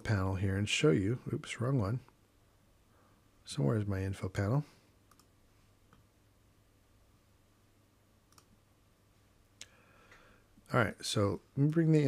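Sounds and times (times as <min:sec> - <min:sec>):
computer mouse clicks: 0:05.0 - 0:06.1, 0:08.3 - 0:08.6.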